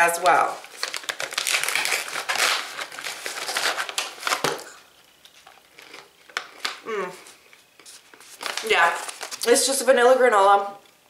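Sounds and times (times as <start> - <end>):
plastic pouch crinkling: 0.6 - 6.8, 7.7 - 9.6.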